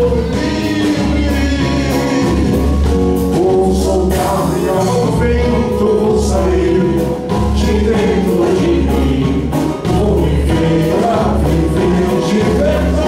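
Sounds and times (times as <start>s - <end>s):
band playing: 0.0s - 13.0s
man singing live: 0.0s - 13.0s
voices singing along: 0.0s - 13.0s.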